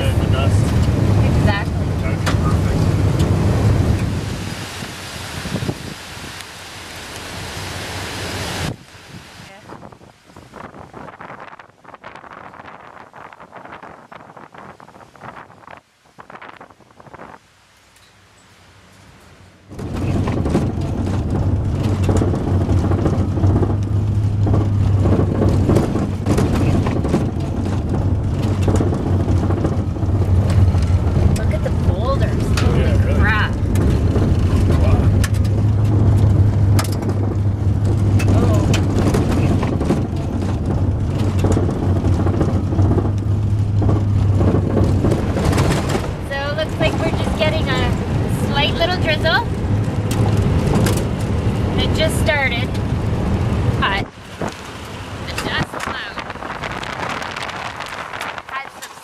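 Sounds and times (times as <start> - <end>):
van road noise drone: 0.0 - 59.0
gravel crackling under tyres: 8.7 - 59.0.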